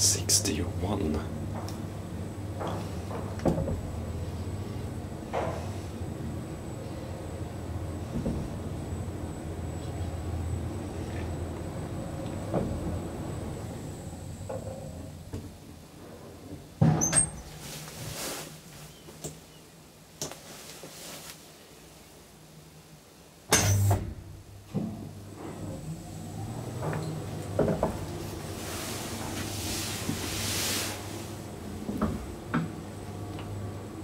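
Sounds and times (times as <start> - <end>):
elevator humming: 0.0 - 16.1, 23.8 - 34.0
elevator doors clunking: 11.4 - 15.3, 24.8 - 30.3.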